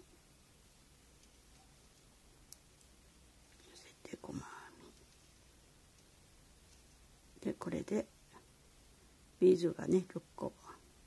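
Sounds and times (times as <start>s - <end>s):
soft whisper: 3.5s - 5.4s, 10.4s - 11.0s.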